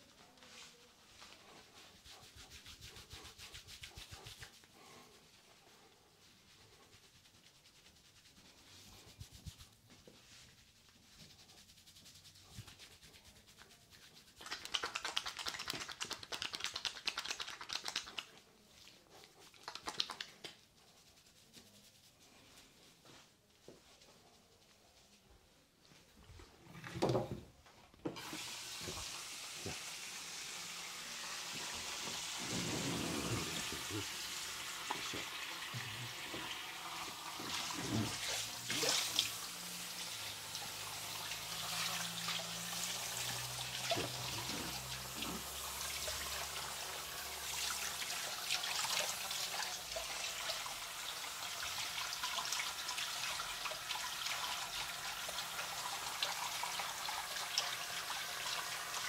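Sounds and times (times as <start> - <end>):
spray hose water running: 28.2 - 59.0
water splashing into basin: 37.4 - 39.4.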